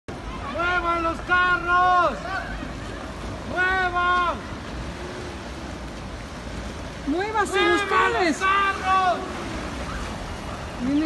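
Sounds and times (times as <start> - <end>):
person yelling: 3.5 - 4.5, 7.3 - 9.3.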